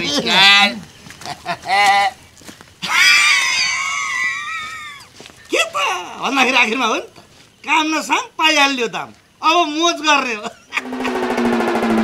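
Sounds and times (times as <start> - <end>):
high-pitched scream: 2.8 - 5.0.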